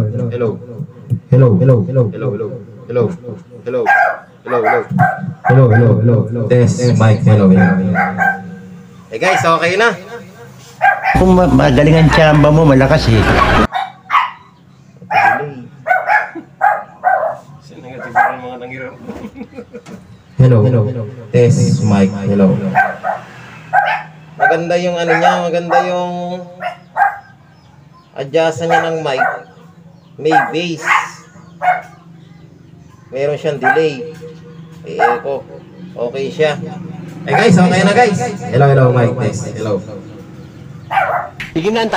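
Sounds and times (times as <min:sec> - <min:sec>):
loud amplified voice: 0:00.0 - 0:10.4, 0:11.1 - 0:13.7, 0:20.4 - 0:22.9, 0:24.4 - 0:26.6, 0:30.2 - 0:31.3, 0:33.2 - 0:40.4
dog barking: 0:03.8 - 0:06.0, 0:07.5 - 0:09.6, 0:10.8 - 0:11.2, 0:13.5 - 0:18.8, 0:22.6 - 0:27.5, 0:28.6 - 0:32.2, 0:33.0 - 0:35.7, 0:37.2 - 0:38.5, 0:40.8 - 0:41.4
amplifier hum: 0:11.2 - 0:13.7.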